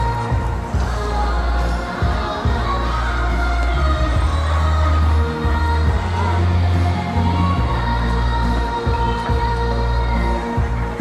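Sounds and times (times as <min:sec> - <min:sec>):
crowd voices and cheers: 0:00.0 - 0:11.0
dance music over loudspeakers: 0:00.0 - 0:11.0.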